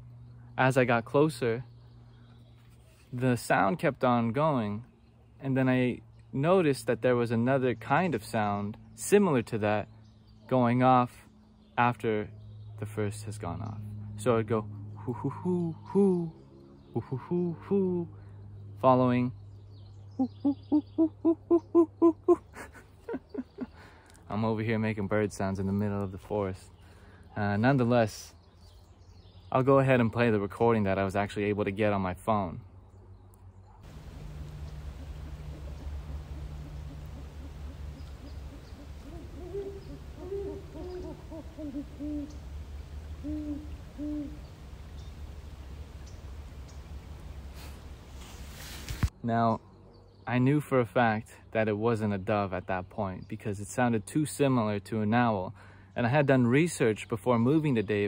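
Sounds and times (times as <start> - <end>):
low hum of recording noise: 0.0 - 58.0
man imitating owl hoots: 15.0 - 18.2, 20.2 - 23.6, 35.4 - 42.4, 43.2 - 44.4.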